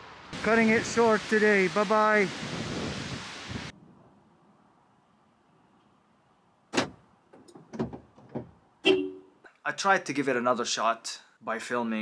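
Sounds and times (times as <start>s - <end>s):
car door latch clunk: 6.7s - 8.6s.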